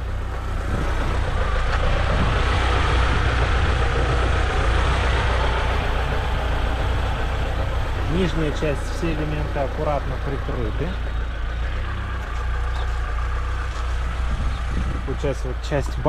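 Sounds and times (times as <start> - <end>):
vehicle engine running: 0.0 - 16.0.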